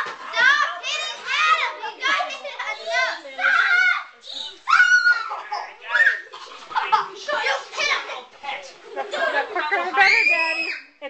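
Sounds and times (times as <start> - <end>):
children shouting and squealing: 0.0 - 8.3, 9.8 - 11.0.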